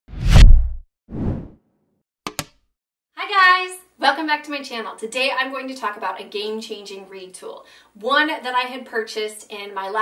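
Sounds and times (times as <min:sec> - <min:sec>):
whoosh sound effects: 0:00.1 - 0:01.5.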